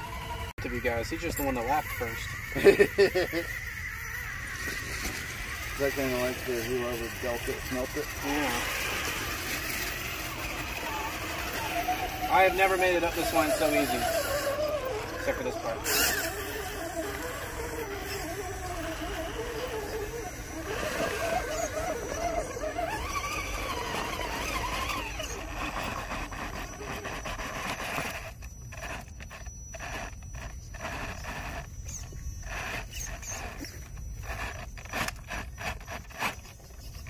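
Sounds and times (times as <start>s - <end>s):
electric motor and gearbox whining: 0.0s - 37.0s
tyres scraping on stone: 4.4s - 37.0s.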